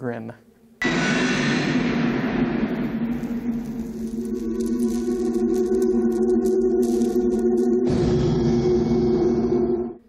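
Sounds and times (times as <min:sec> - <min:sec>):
low steady hum: 0:00.0 - 0:10.0
loud rushing rumbling noise: 0:00.8 - 0:09.9.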